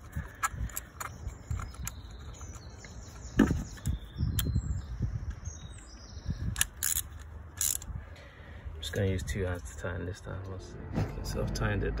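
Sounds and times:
ratchet wrench clicking: 6.6s - 7.9s.

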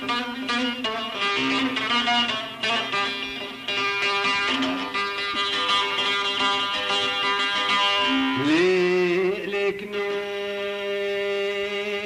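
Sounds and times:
folk music with sustained notes: 0.0s - 12.0s.

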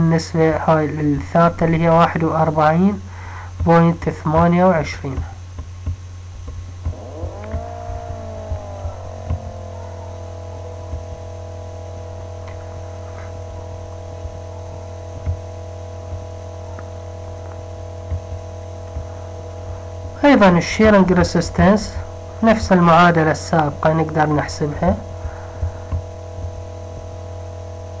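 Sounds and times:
low electrical hum: 0.0s - 28.0s
motor drone sliding down: 6.8s - 19.7s.

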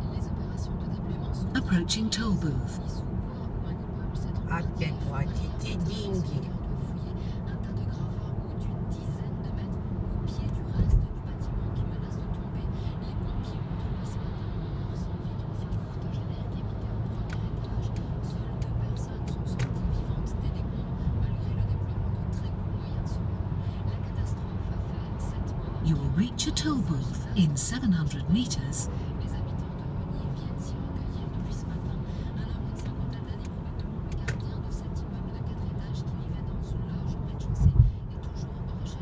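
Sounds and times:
car cabin road and engine noise: 0.0s - 39.0s.

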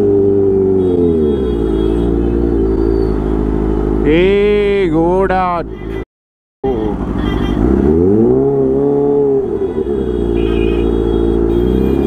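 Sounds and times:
motorcycle engine revving: 0.0s - 4.8s, 6.6s - 12.0s.

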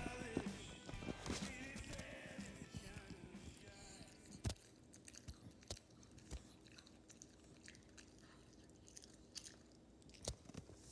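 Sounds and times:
dog chewing and crunching treat: 0.0s - 10.9s.

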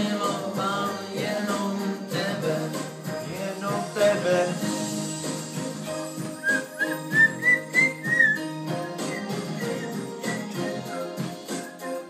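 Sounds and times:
backing music with steady beat: 0.0s - 12.0s
person whistling a tune: 6.3s - 12.0s.

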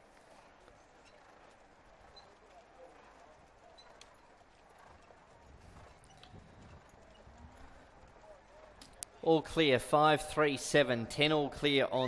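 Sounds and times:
faint hoofbeats of horses: 0.0s - 12.0s.

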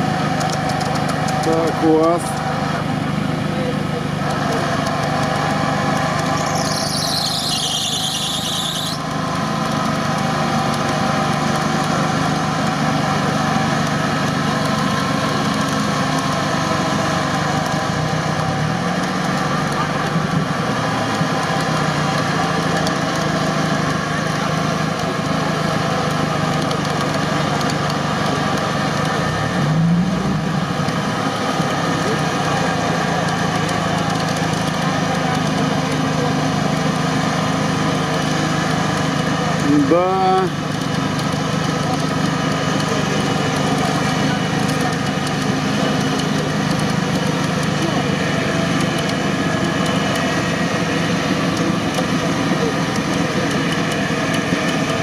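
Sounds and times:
off-road vehicle engines revving: 0.0s - 55.0s
high falling squeal: 6.2s - 9.0s.

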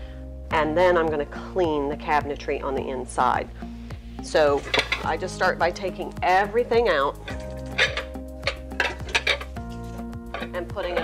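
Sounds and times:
background music: 0.0s - 11.0s
metal pots clinking: 4.5s - 5.4s, 7.0s - 11.0s.

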